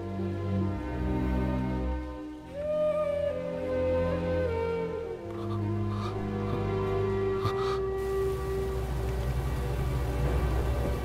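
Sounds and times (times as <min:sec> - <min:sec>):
steady rain falling: 0:05.3 - 0:11.0.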